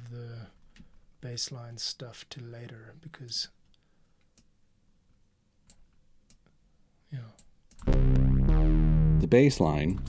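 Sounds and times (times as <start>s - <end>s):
loud synthesizer music: 7.9s - 10.0s.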